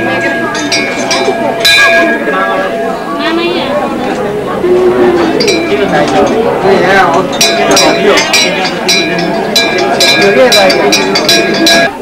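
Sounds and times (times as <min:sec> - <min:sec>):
people talking in a crowd: 0:00.0 - 0:12.0.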